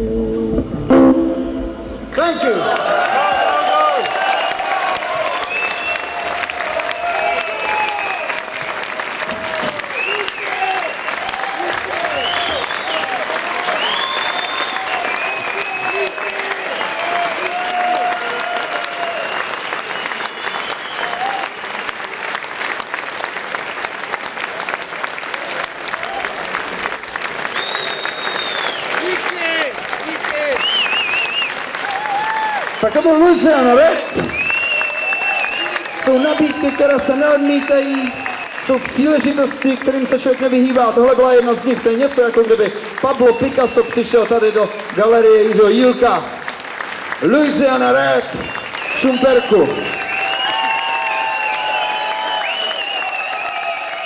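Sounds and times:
audience clapping: 2.1 - 54.0.

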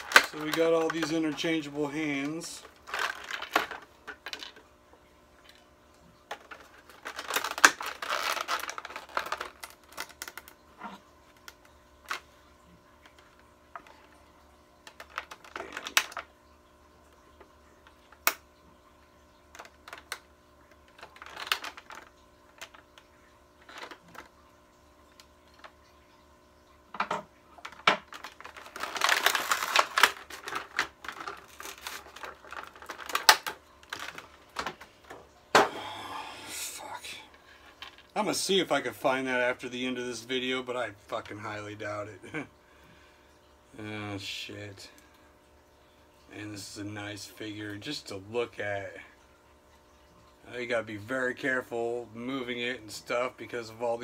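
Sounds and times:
plastic packaging crinkling: 0.0 - 4.7, 6.2 - 12.2, 13.0 - 18.6, 19.2 - 24.5, 27.5 - 36.0.

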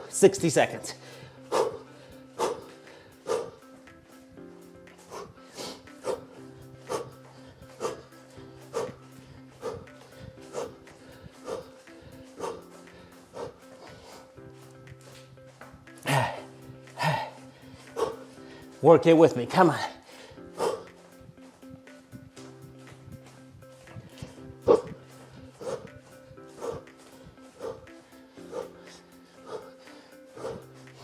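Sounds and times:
background music with held notes: 0.0 - 31.0.

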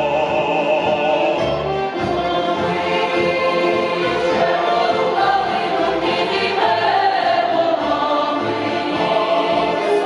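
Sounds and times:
choir singing in harmony: 0.0 - 10.0.

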